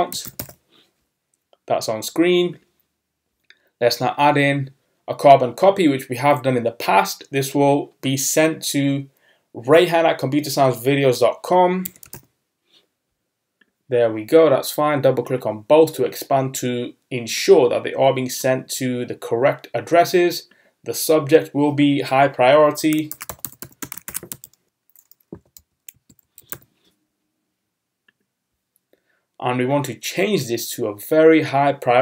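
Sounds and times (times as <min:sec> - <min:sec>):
typing on computer keyboard: 0:00.1 - 0:00.6, 0:11.8 - 0:12.3, 0:22.9 - 0:26.7.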